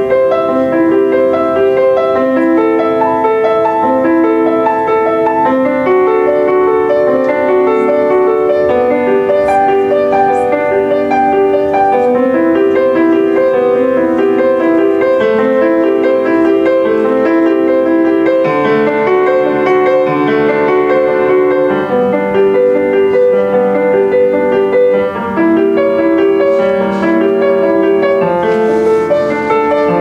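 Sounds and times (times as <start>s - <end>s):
solo grand piano: 0.0s - 30.0s.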